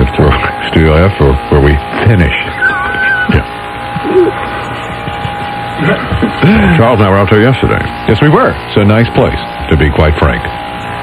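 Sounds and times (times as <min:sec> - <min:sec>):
radio background noise: 0:00.1 - 0:10.6
radio speech: 0:00.2 - 0:04.3
voiced murmur: 0:02.3 - 0:07.1
thin whistle tone: 0:02.5 - 0:03.4.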